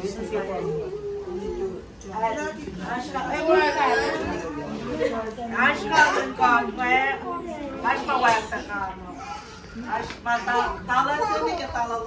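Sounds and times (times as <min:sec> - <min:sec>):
adults and children chattering: 0:00.0 - 0:12.0.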